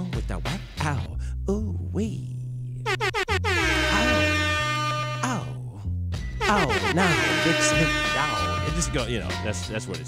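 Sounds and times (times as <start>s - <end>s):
air horn blasts: 2.8s - 5.5s, 6.4s - 9.4s
reggae beat with bassline: 6.2s - 10.0s.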